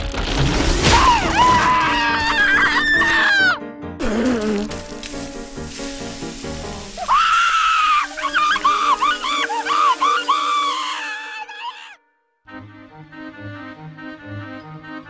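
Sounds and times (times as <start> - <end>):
cartoon character screaming in pain: 0.9 - 4.6, 7.0 - 12.0.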